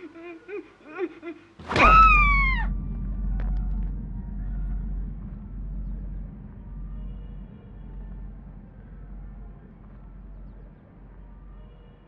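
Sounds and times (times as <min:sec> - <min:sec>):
low steady rumble: 0:01.6 - 0:12.0.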